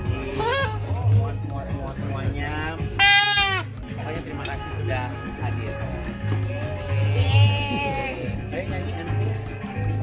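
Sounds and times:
chatter: 0.0s - 10.0s
music: 0.0s - 10.0s
party horn note: 2.9s - 3.8s.

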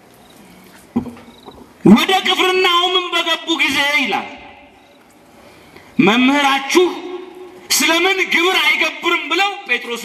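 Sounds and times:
man preaching: 1.8s - 4.7s, 6.0s - 10.0s.

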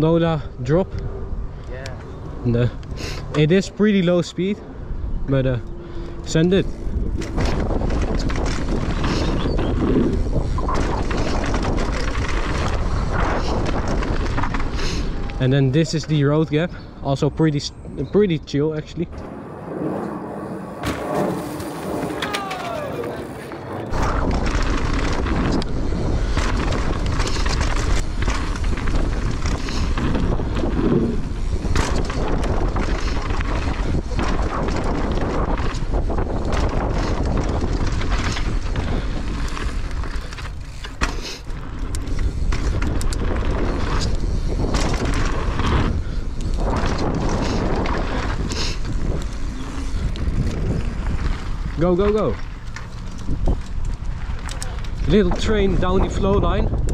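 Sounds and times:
wind on microphone: 4.6s - 15.4s, 19.1s - 56.9s
bike rattling and knocking: 6.2s - 15.2s, 20.9s - 56.9s
tyres rolling on dirt: 6.3s - 16.3s, 19.3s - 56.6s.

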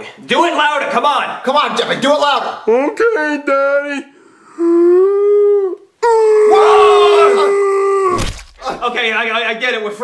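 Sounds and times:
man moaning: 4.5s - 8.8s.

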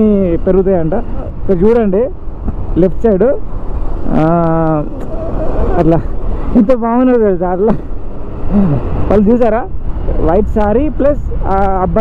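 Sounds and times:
man talking: 0.0s - 7.9s, 8.6s - 12.0s
motorcycle running: 0.0s - 12.0s.

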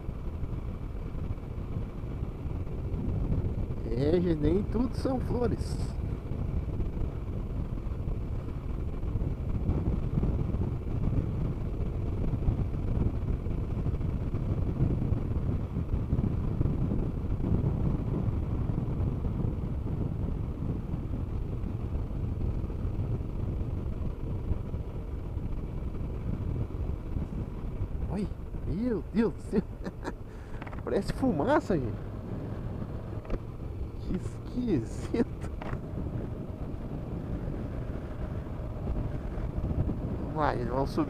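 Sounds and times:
motorcycle engine rumble: 0.0s - 41.0s
wind and road noise: 0.0s - 41.0s.

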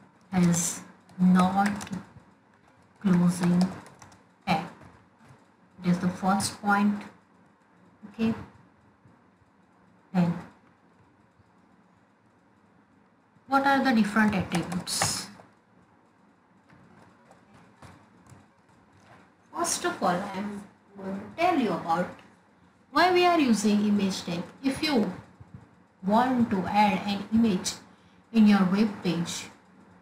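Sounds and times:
person speaking: 0.3s - 2.2s, 3.0s - 4.9s, 5.8s - 7.1s, 8.0s - 8.6s, 10.2s - 10.6s, 13.5s - 15.5s, 19.6s - 22.2s, 23.0s - 27.8s
typing on a keyboard: 0.3s - 5.4s, 14.1s - 15.5s, 16.7s - 19.1s.

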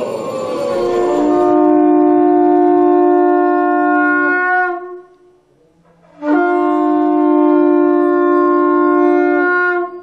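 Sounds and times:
conch shell blown: 0.5s - 5.4s, 6.1s - 10.0s.

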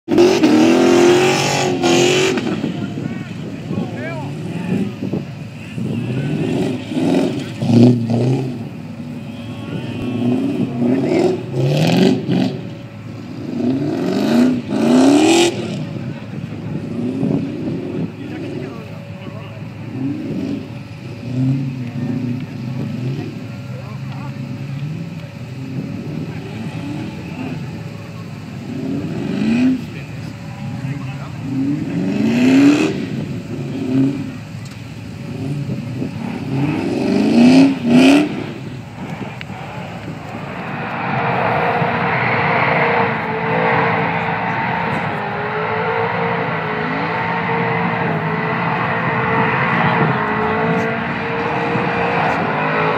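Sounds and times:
car engine revving hard: 0.0s - 23.5s, 24.7s - 52.9s.

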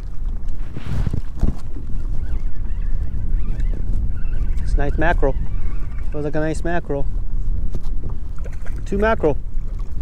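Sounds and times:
water lapping around kayak: 0.0s - 10.0s
wind rumble on microphone: 0.0s - 10.0s.

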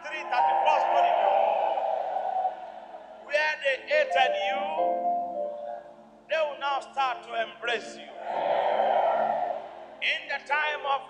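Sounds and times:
loud rush of noise: 0.0s - 3.3s
sustained music chords: 0.0s - 3.3s, 3.9s - 6.3s.

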